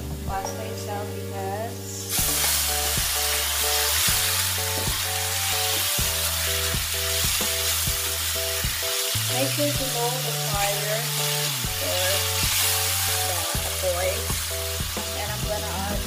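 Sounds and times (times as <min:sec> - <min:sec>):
food sizzling in a pan: 0:00.5 - 0:16.0.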